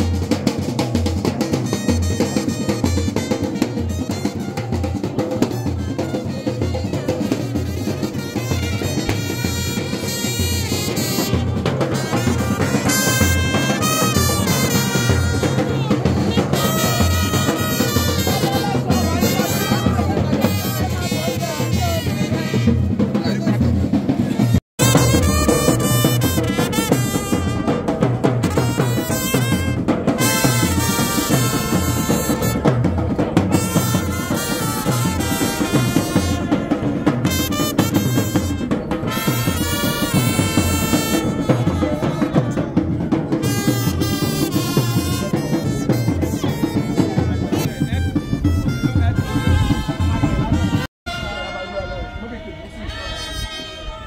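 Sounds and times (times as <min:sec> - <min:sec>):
drum beat: 0:00.0 - 0:50.9
trumpets: 0:00.0 - 0:54.0.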